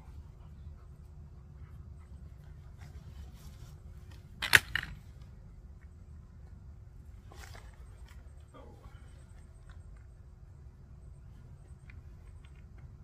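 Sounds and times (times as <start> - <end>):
sharp clicks of camping gear: 4.0 - 6.5, 11.7 - 13.0.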